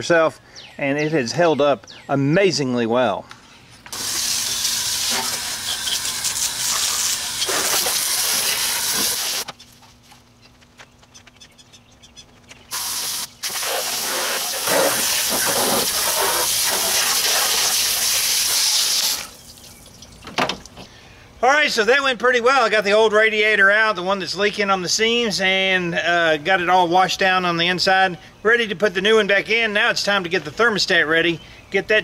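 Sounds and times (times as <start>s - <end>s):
hose nozzle spraying water: 3.9s - 9.5s, 12.7s - 19.4s.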